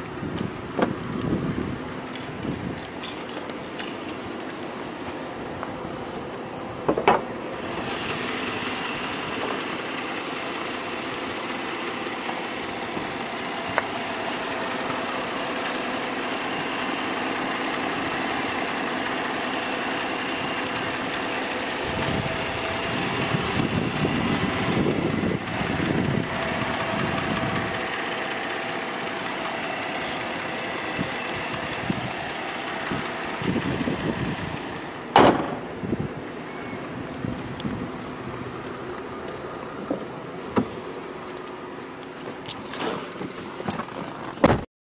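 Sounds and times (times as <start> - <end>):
car engine idling: 0.0 - 44.4
sharp thump: 35.1 - 35.7, 44.4 - 44.6.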